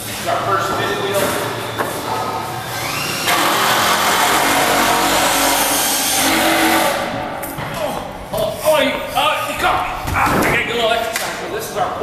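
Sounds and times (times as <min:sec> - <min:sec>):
machine whine and rushing hiss: 0:02.0 - 0:07.1.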